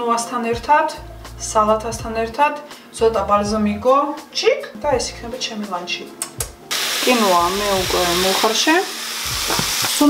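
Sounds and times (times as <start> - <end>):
chicken sizzling in a frying pan: 6.7 - 10.0.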